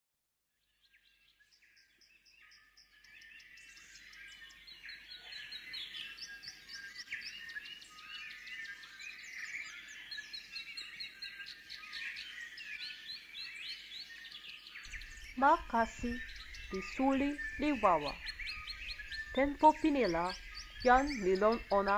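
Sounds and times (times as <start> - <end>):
birds chirping and whistling: 1.0 - 21.9.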